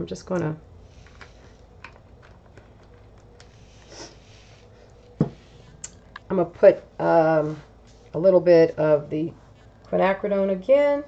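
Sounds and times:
soft rustle: 6.7 - 9.9.

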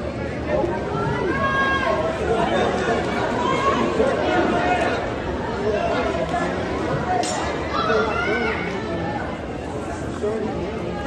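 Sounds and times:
crowd chatter: 0.0 - 11.0
steady background din: 0.0 - 11.0.

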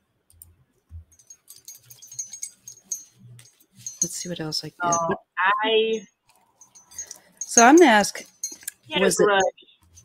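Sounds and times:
small objects clicking and rattling: 1.1 - 4.3, 6.3 - 8.9
thin high metallic rings: 1.1 - 5.2, 6.4 - 10.0.

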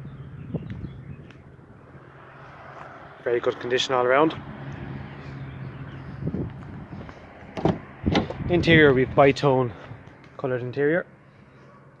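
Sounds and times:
car door latch click: 7.6 - 8.4.

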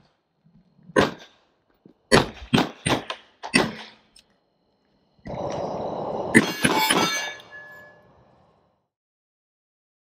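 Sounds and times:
faint ringing tone: 4.1 - 8.9
low rumbling: 4.5 - 6.6
ringing metallic clangs: 6.4 - 8.2.

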